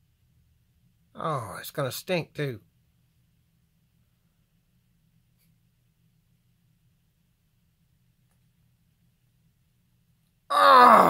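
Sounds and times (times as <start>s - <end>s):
man groaning: 10.5s - 11.0s.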